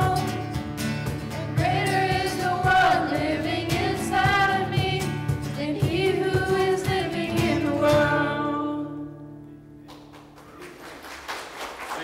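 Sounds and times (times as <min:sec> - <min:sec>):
group singing worship song: 0:00.0 - 0:09.4
acoustic guitar: 0:00.0 - 0:10.8
congregation applause: 0:09.8 - 0:12.0.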